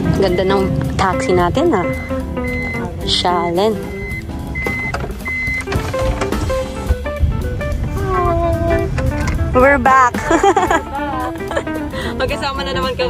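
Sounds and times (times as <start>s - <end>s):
background music with voice: 0.0s - 5.2s, 7.9s - 13.0s
high electronic beeps: 0.0s - 6.5s
sliding door closing: 4.6s - 7.1s.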